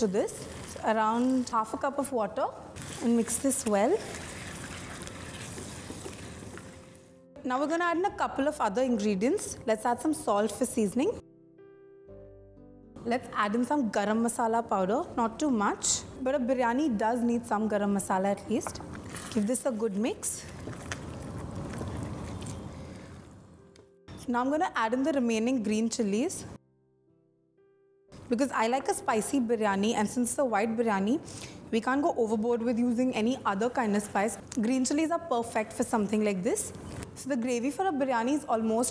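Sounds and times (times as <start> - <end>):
spatula stirring in gravy: 2.8 - 7.0.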